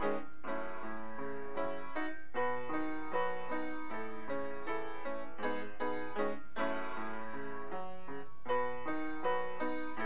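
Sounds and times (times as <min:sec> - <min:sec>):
upright piano chords: 0:00.0 - 0:10.0.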